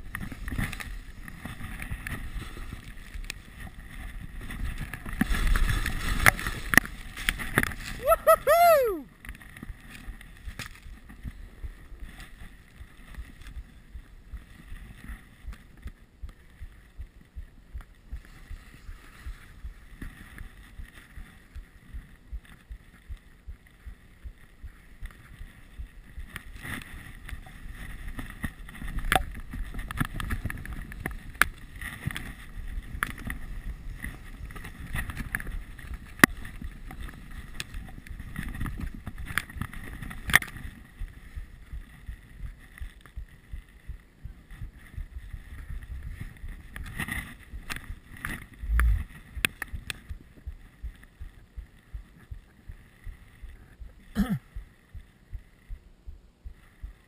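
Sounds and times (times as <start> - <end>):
skis swishing through snow: 0.0 - 8.6, 18.2 - 21.5.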